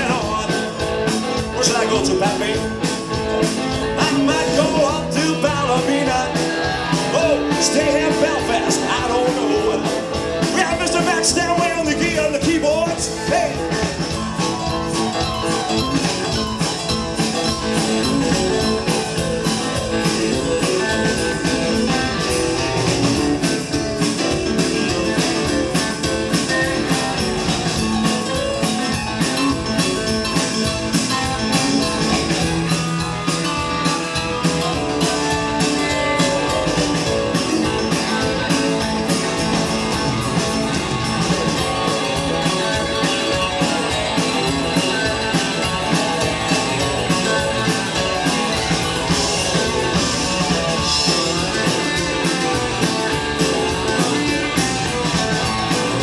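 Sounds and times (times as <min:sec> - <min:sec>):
electric guitars: 0:00.0 - 0:56.0
steady drum beat: 0:00.0 - 0:56.0.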